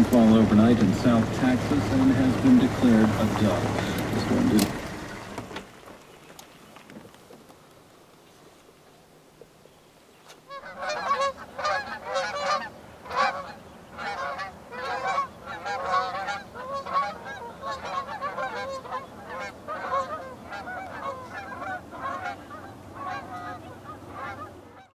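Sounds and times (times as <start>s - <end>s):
geese honking in flight: 0.0s - 5.5s, 10.5s - 24.9s.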